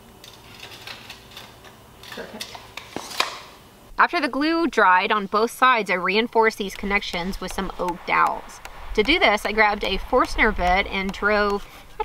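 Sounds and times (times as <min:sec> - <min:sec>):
hand tools clicking and tapping: 0:11.0 - 0:12.0.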